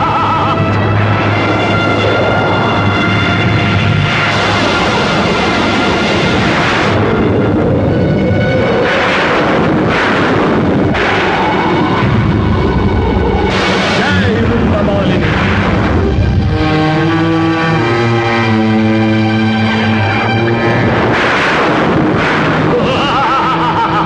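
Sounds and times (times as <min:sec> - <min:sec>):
fire roaring and rumbling: 0:00.0 - 0:24.0.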